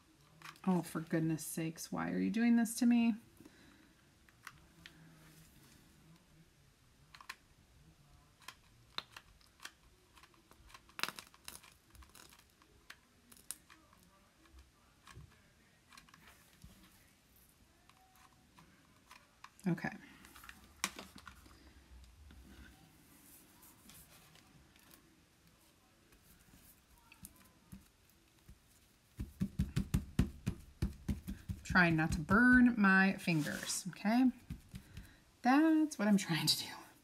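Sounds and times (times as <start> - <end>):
hands clicking and tapping: 29.2 - 32.7, 34.4 - 35.2.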